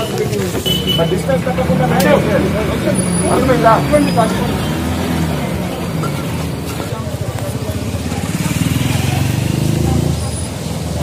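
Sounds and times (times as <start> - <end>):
street voices: 0.0 - 11.0
vehicle engine pulsing: 0.0 - 11.0.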